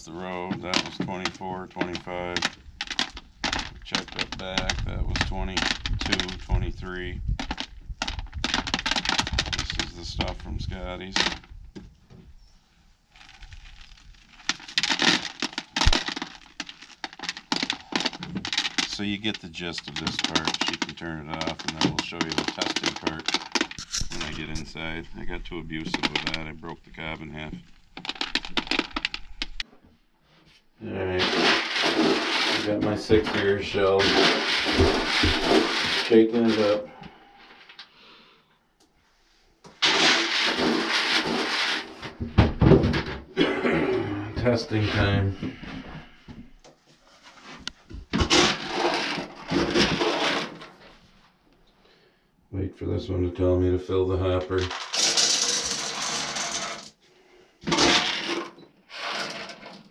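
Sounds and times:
corn kernels rattling into bucket: 0:00.0 - 0:11.5, 0:13.1 - 0:29.6, 0:30.9 - 0:36.8, 0:39.8 - 0:42.1, 0:48.1 - 0:50.8, 0:54.4 - 0:57.0, 0:57.6 - 0:59.9.

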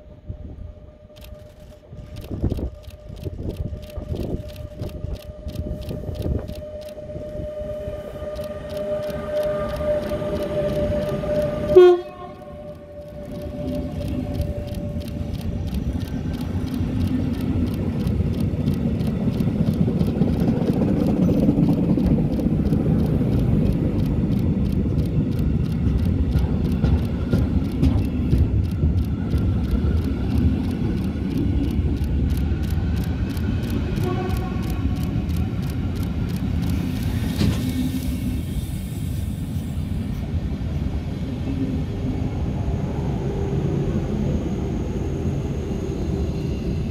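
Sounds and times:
train rumbling: 0:00.0 - 0:46.9
train horn: 0:03.7 - 0:15.6, 0:33.8 - 0:35.0.

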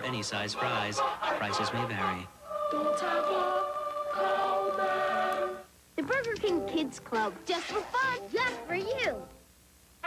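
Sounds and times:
choir singing held chord: 0:00.0 - 0:05.7.

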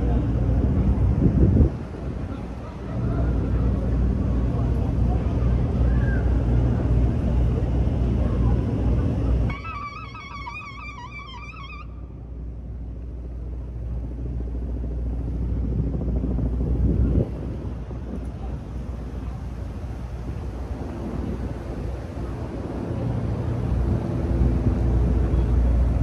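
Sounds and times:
city traffic rumble: 0:00.0 - 0:26.0
high wavering tone: 0:09.5 - 0:12.1.

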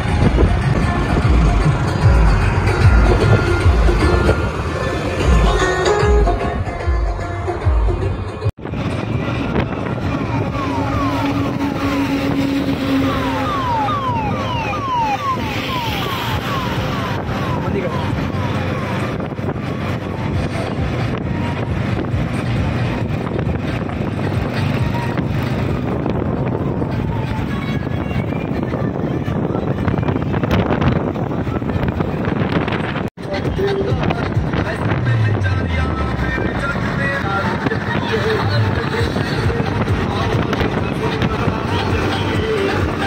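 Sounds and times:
vehicle and road noise: 0:00.0 - 0:43.0.

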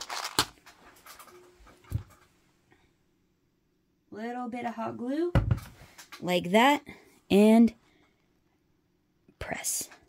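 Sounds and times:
plastic packet rustling: 0:00.0 - 0:01.4.

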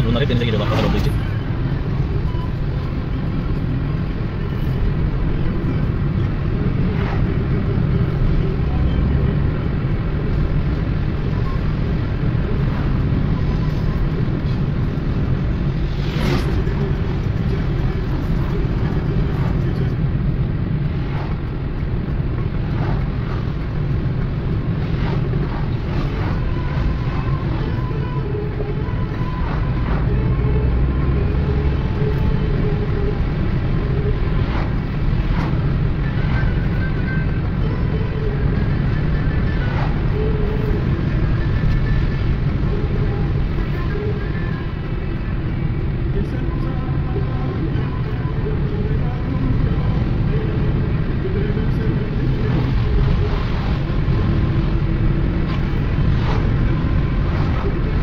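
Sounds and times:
car interior road rumble: 0:00.0 - 0:58.0.

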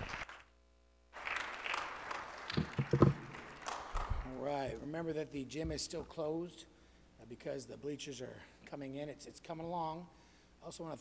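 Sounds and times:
congregation applauding: 0:00.0 - 0:00.5, 0:01.2 - 0:04.5.

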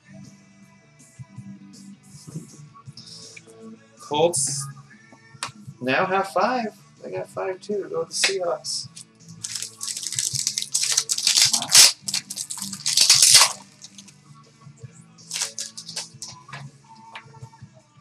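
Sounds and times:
background music: 0:00.0 - 0:18.0
card pack crinkling: 0:09.4 - 0:14.1, 0:15.3 - 0:16.4.

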